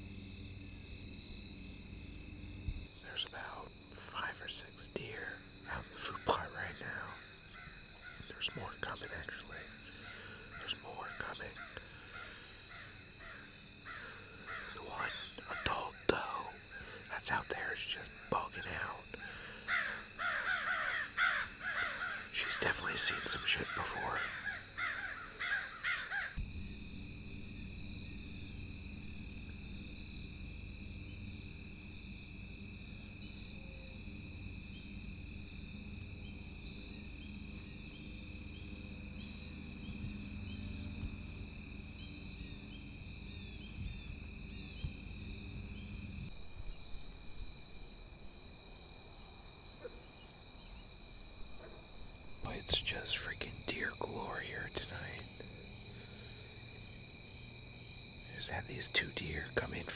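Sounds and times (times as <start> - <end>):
high-pitched insect drone: 0.0 - 59.9.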